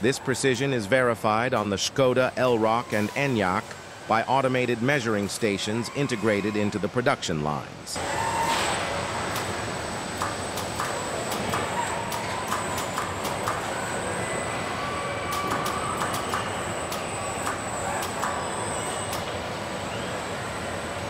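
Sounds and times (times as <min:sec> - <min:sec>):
high machine whine: 0:00.0 - 0:21.0
factory machinery din: 0:07.7 - 0:21.0
short rising and falling whines: 0:08.0 - 0:21.0
clamps clicking and clacking: 0:15.3 - 0:18.4.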